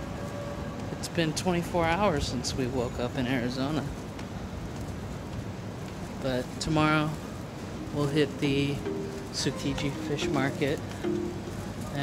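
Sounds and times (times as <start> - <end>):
street noise with low rumble: 0.0 - 12.0.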